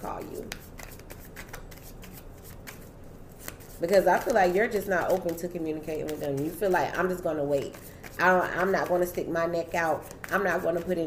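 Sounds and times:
cards being shuffled: 0:00.2 - 0:11.0.

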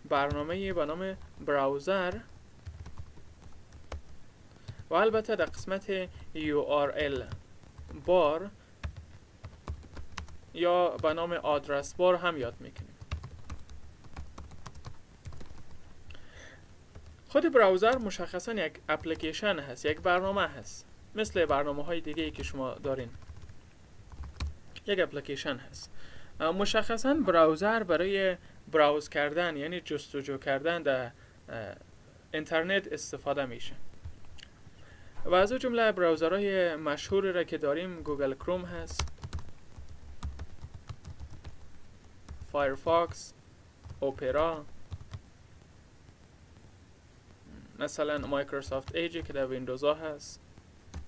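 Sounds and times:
typing on computer keyboard: 0:02.0 - 0:11.2, 0:12.7 - 0:15.8, 0:17.8 - 0:18.2, 0:21.3 - 0:24.6, 0:38.8 - 0:42.5, 0:43.8 - 0:45.3.

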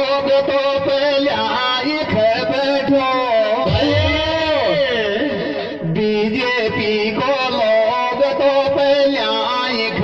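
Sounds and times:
man singing through a microphone: 0:00.0 - 0:10.0.

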